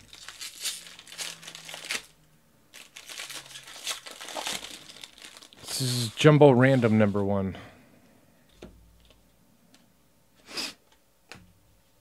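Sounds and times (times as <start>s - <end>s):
foil wrapper crinkling and tearing: 0.0s - 6.2s.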